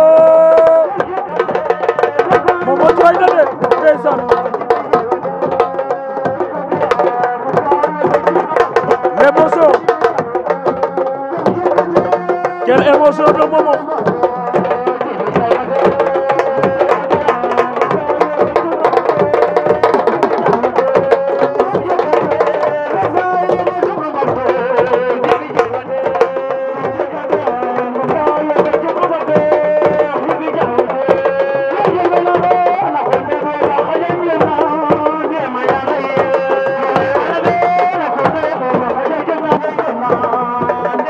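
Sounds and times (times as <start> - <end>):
drum ensemble playing fast rhythms: 0.0 - 41.0
voices singing: 0.0 - 41.0.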